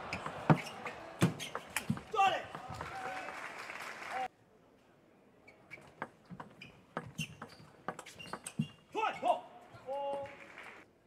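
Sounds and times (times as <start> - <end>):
crowd cheering and applause: 0.0 - 4.3
table tennis ball hitting bats: 0.1 - 3.2
loud shout: 2.1 - 4.3.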